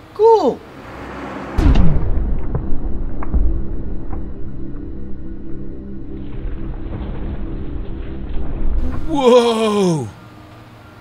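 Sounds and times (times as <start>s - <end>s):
deep rumble: 1.6s - 9.1s.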